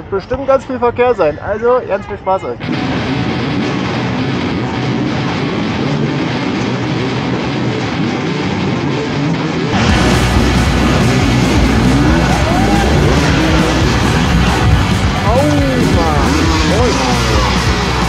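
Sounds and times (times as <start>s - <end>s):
motorcycle engines din: 2.6s - 18.0s
music: 2.6s - 18.0s
dirt bike engine revving: 9.7s - 18.0s.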